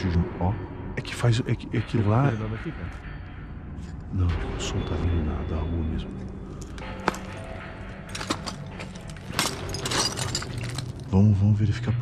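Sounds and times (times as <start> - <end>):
footsteps on rubble: 6.5 - 11.1.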